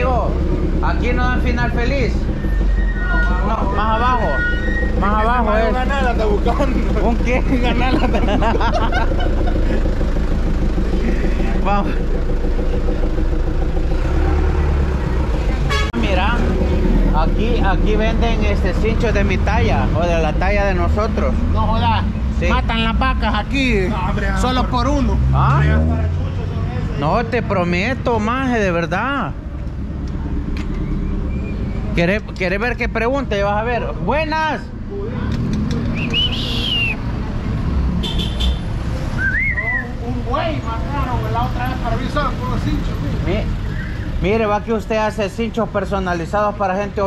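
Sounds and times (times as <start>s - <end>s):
nearby vehicle engine: 0.0s - 47.0s
street traffic rumble: 0.0s - 47.0s
people talking and laughing: 1.4s - 13.3s, 14.3s - 27.4s.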